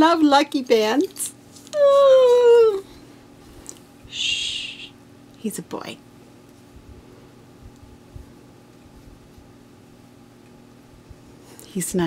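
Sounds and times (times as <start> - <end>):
small dog whining: 1.7 - 2.9.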